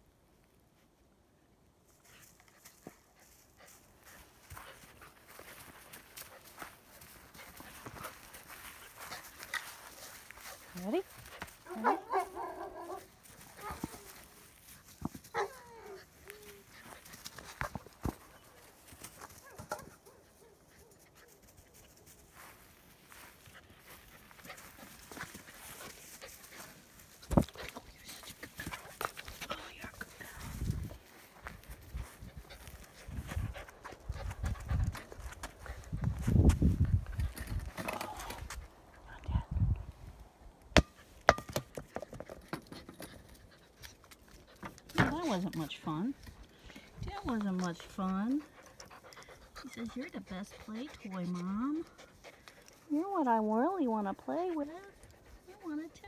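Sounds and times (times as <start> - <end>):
knocks and rustles in dry grass: 1.9 - 56.0
puppy whining: 15.3 - 16.9.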